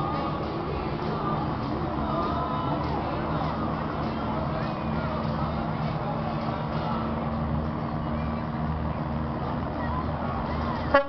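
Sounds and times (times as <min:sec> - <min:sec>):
crowd chatter: 0:00.0 - 0:11.0
low engine hum: 0:00.0 - 0:11.0.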